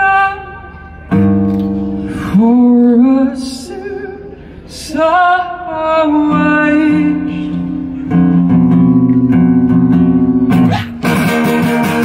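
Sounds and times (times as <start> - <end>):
man singing: 0.0 - 1.1, 2.1 - 8.3
acoustic guitar: 0.0 - 12.0.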